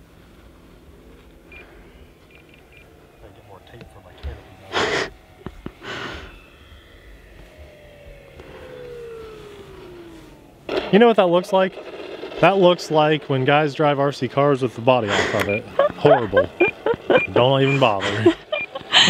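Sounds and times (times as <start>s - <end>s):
model plane motor whine: 0.4s - 19.0s.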